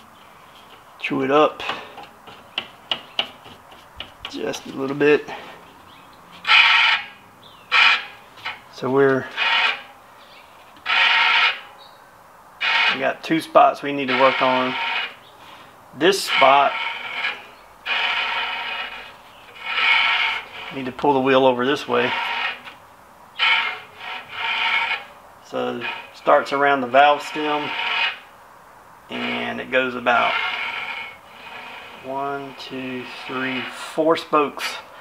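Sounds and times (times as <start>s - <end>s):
bicycle rim scraping caliper: 0.0s - 11.9s, 12.6s - 22.8s, 23.4s - 28.3s, 29.1s - 34.8s.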